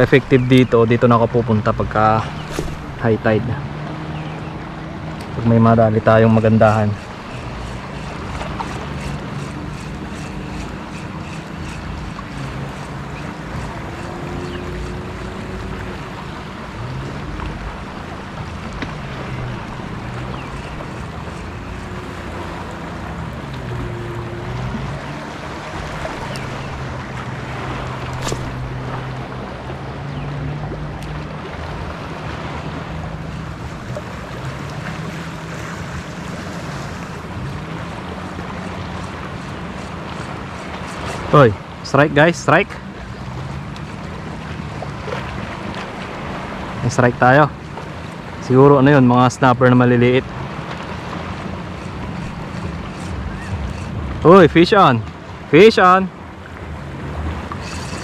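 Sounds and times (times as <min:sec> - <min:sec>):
low wavering hum: 0:00.0 - 0:41.3, 0:56.2 - 0:58.0
lapping shallow water: 0:00.0 - 0:58.0.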